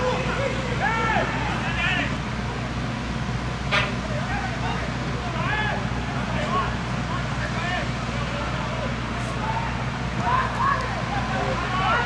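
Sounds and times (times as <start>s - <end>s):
players shouting: 0.0s - 2.3s, 3.9s - 12.0s
low stadium hum: 0.0s - 12.0s.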